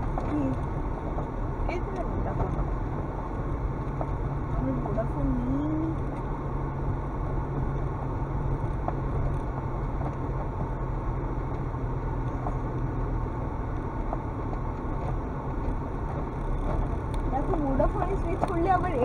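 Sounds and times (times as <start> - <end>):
car engine running: 0.0 - 19.0
tyres rumbling on gravel: 0.0 - 19.0.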